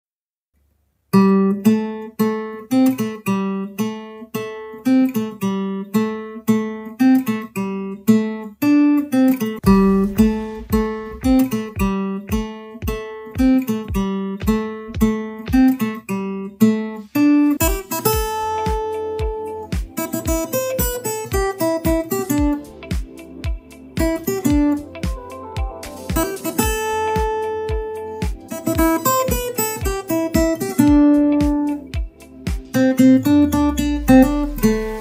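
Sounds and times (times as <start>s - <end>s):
fingerpicked acoustic guitar: 1.1s - 35.0s
deep thud on each beat: 9.6s - 15.9s.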